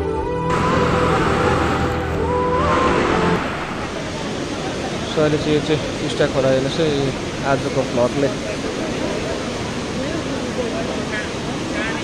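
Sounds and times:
floodwater rushing roar: 0.5s - 12.0s.

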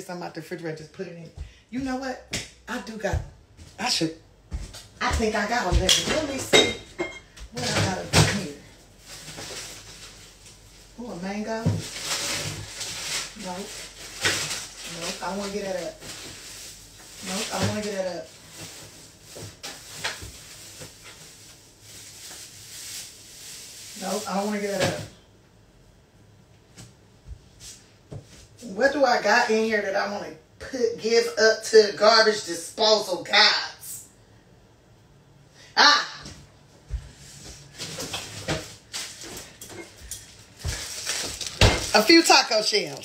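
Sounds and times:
low steady hiss: 0.0s - 43.0s
food containers knocking and rustling: 4.4s - 21.5s, 36.8s - 43.0s
package crinkling: 9.0s - 11.0s, 11.8s - 17.6s, 40.5s - 43.0s.

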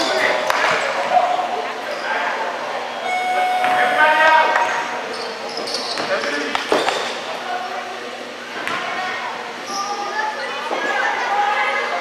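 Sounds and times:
voices echoing in gymnasium: 0.0s - 12.0s.

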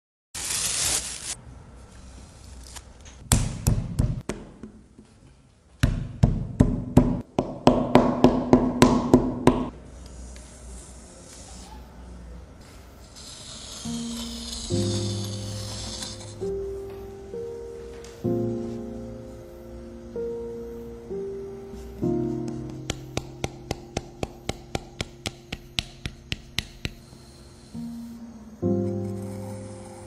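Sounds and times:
compass scraping clay: 12.7s - 16.4s
soft piano music: 13.9s - 30.0s
wooden paddle slapping clay: 22.5s - 27.0s.

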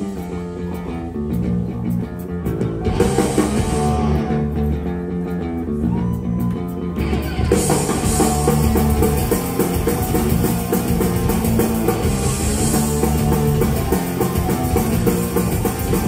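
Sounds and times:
drum kit with cymbals: 0.0s - 4.5s, 7.0s - 16.0s
bass guitar: 0.0s - 16.0s
distorted electric guitars: 0.0s - 16.0s.

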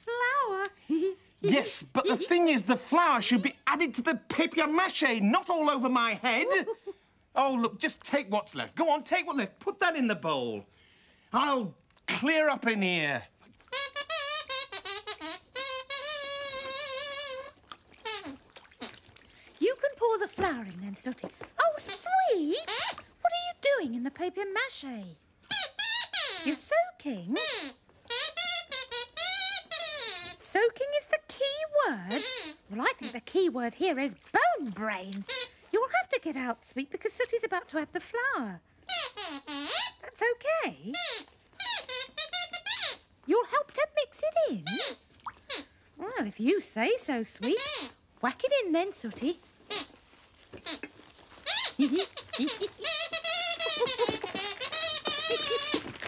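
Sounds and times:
puppet squeaker voice: 1.4s - 3.6s, 13.7s - 19.0s, 21.6s - 23.7s, 25.5s - 30.6s, 31.9s - 33.4s, 35.2s - 35.6s, 38.9s - 43.1s, 44.5s - 45.7s, 47.3s - 48.0s, 49.7s - 50.0s, 50.6s - 56.0s.

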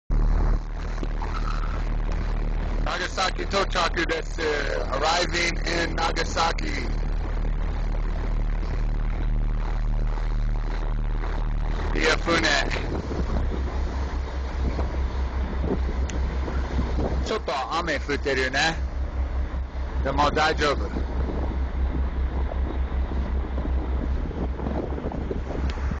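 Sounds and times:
ferry engine hum: 0.0s - 26.0s
wind and water rushing: 0.1s - 26.0s.

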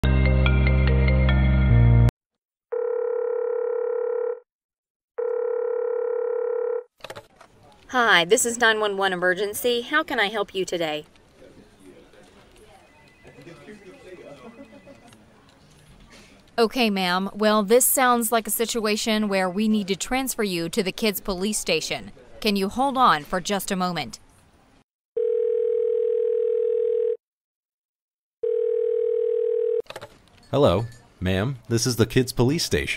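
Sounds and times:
phone ringtone: 2.7s - 4.4s, 5.2s - 6.9s, 12.8s - 15.1s, 25.2s - 27.2s, 28.4s - 29.9s
telephone line tones: 12.7s - 15.1s, 25.2s - 27.2s, 28.4s - 29.9s.

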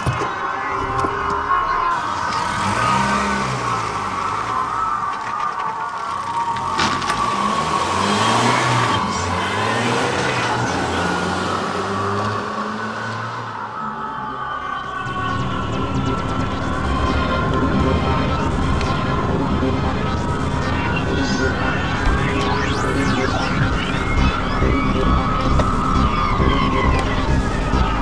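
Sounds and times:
car engine revving: 0.5s - 5.4s, 6.1s - 28.0s.

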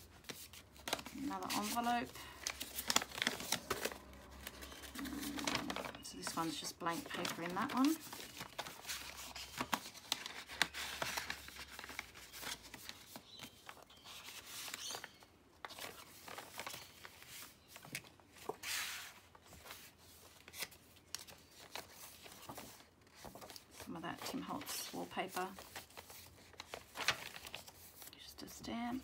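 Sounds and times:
paper pages rustling: 0.0s - 29.0s.

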